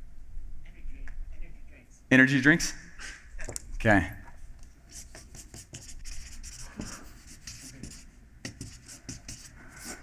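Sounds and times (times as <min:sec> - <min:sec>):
marker scratching on paper: 0:04.8 - 0:10.0.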